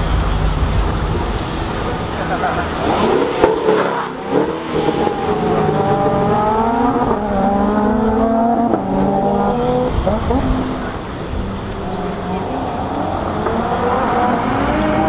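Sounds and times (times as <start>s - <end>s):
car engine accelerating through gears: 1.2s - 15.0s.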